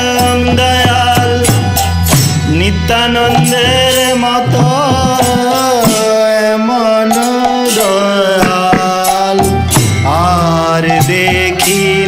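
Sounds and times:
droning harmonium: 0.0 - 12.0
man singing devotional song: 0.0 - 12.0.

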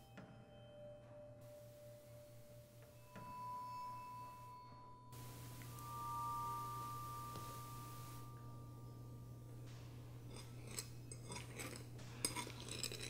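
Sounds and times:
high ringing tone: 0.0 - 10.3
low steady hum: 0.0 - 13.0
fork scraping on ceramic plate: 10.3 - 13.0.

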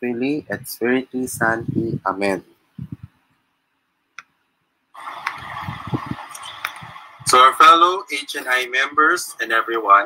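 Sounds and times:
soundtrack hiss: 5.0 - 10.0.

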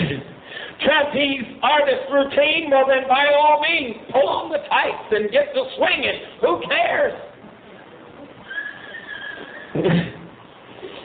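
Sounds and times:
tape hiss: 0.0 - 11.0
thin high held tone: 7.8 - 9.8.

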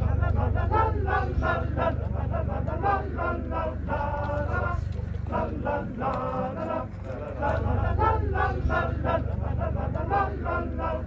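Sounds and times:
low rumble: 0.0 - 11.0
men's choir singing a cappella: 0.0 - 11.0.

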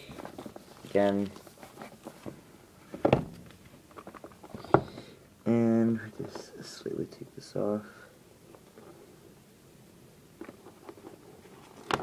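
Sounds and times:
plastic wrap rustling: 0.0 - 4.9.

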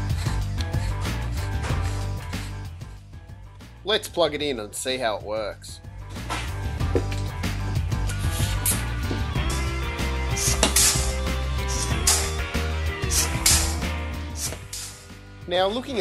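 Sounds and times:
background music with beat: 0.0 - 4.3, 5.7 - 16.0.

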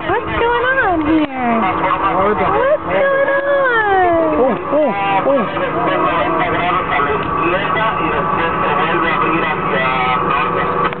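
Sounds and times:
boat engine running: 0.0 - 11.0
indistinct voices: 0.0 - 11.0.

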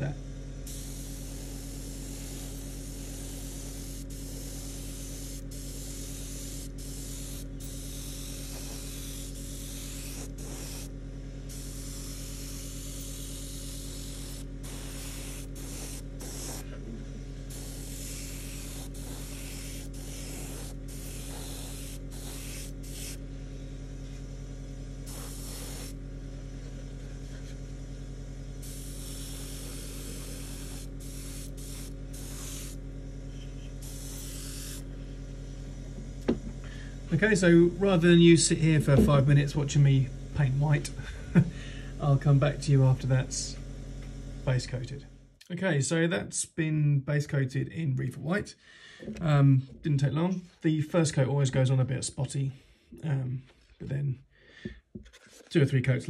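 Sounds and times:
steady low hum: 0.0 - 46.0
airbrush spraying hiss: 0.6 - 24.2, 25.0 - 27.5, 28.5 - 35.7.

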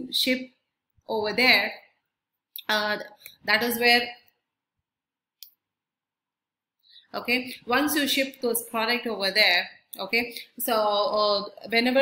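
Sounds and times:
woman speaking: 0.0 - 2.0, 2.6 - 4.3, 7.1 - 12.0.

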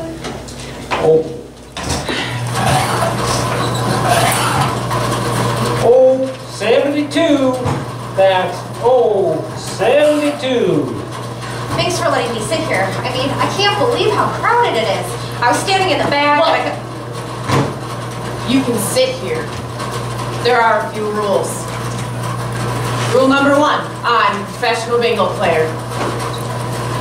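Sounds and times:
indistinct speech: 2.6 - 4.8.

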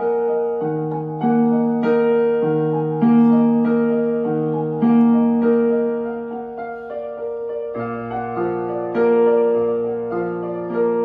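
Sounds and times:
electronic keyboard piano melody: 0.0 - 11.0.

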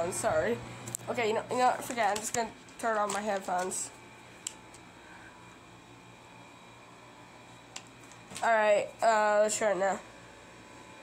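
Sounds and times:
air conditioner hiss: 0.0 - 11.0.

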